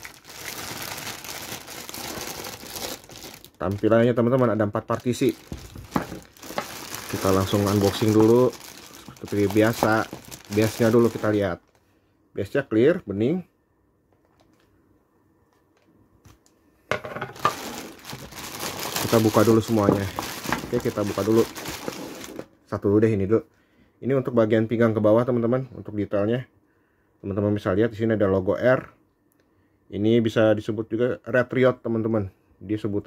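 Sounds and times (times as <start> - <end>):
plastic bag crinkling: 0.0 - 11.8, 17.4 - 22.5.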